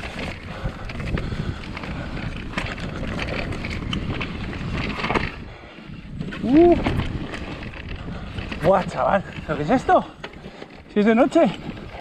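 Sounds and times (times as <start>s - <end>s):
bike clattering over bumps: 0.0s - 12.0s
tyres rolling over dirt: 0.0s - 12.0s
wind over microphone: 0.0s - 12.0s.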